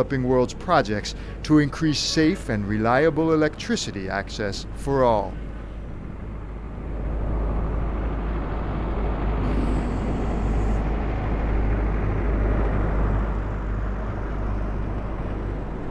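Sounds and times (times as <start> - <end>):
steady low rumbling: 0.0 - 15.9.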